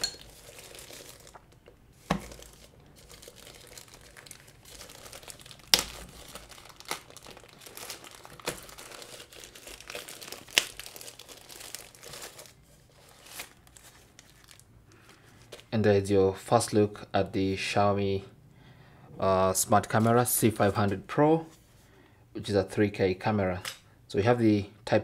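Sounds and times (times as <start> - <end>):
plastic wrapping crinkling: 0.0 - 15.8.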